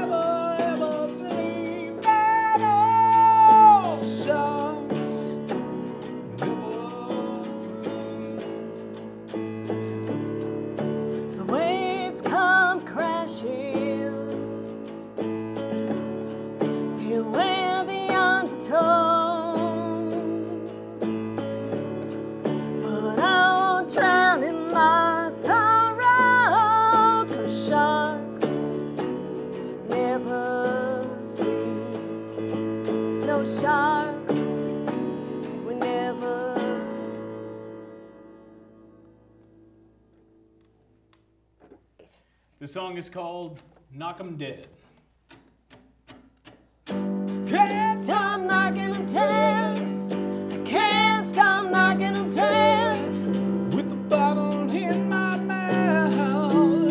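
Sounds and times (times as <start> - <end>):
woman singing with vibrato: 0.0 - 5.5, 6.3 - 9.1, 11.3 - 14.6, 17.0 - 21.2, 22.6 - 28.9, 29.8 - 32.3, 33.2 - 37.2, 47.4 - 56.9
electric keyboard: 0.0 - 41.3, 46.8 - 56.9
electric guitar: 0.0 - 42.2, 45.3 - 56.9.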